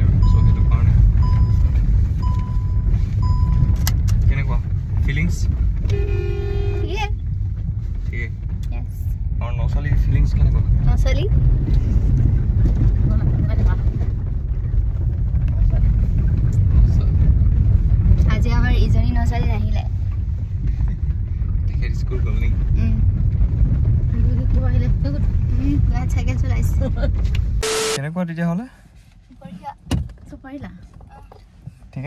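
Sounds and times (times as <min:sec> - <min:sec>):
car engine and tyres rumbling: 0:00.0 - 0:32.0.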